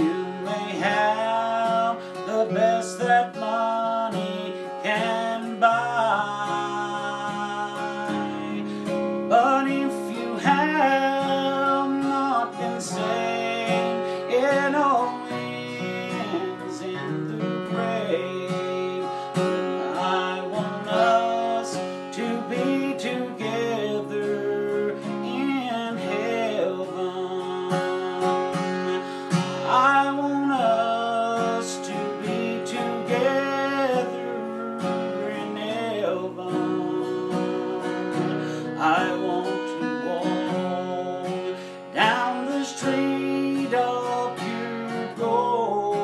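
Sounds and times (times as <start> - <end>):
acoustic guitar melody over chords: 0.0 - 46.0.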